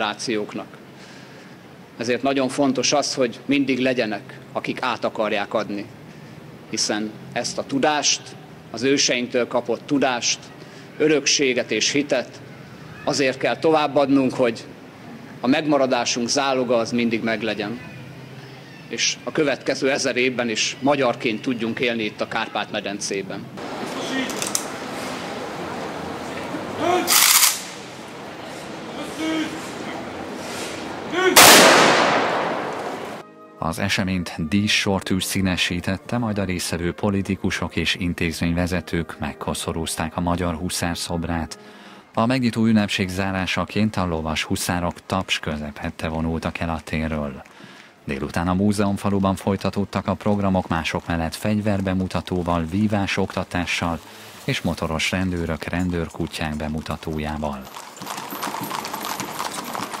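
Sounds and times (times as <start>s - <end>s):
rifle volley crack with echo: 31.3s - 33.2s
horse hooves on asphalt: 48.9s - 60.0s.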